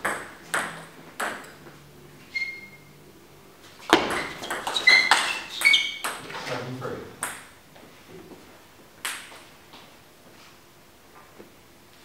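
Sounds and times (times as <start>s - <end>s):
table tennis ball pinging: 0.0s - 1.7s, 3.9s - 6.3s, 7.2s - 7.6s.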